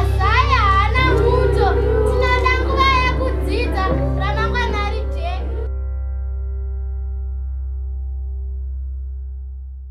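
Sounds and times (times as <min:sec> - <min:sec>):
children singing: 0:00.0 - 0:05.7
low sustained instrumental backing: 0:00.0 - 0:09.9.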